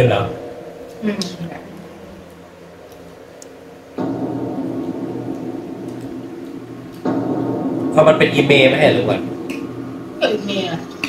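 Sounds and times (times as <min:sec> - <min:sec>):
sustained ringing tones: 0:00.0 - 0:11.0.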